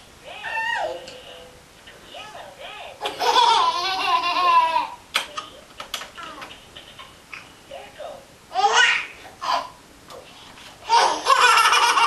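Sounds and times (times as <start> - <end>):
baby girls giggling: 3.0 - 5.0, 10.9 - 12.0.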